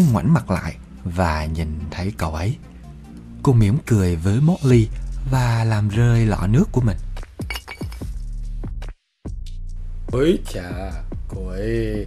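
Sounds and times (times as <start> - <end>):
background music: 0.0 - 12.0
water jug clinking knocks: 7.5 - 8.0.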